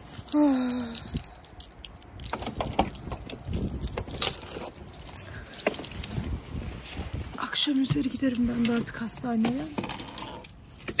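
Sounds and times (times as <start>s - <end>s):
keys jangling: 0.0s - 6.4s, 7.5s - 11.0s
rustling: 0.0s - 10.9s.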